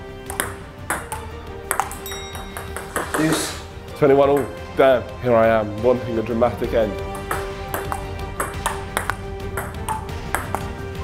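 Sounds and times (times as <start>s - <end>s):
background music: 0.0s - 11.0s
ping-pong ball clicking: 0.3s - 3.3s, 7.2s - 10.7s.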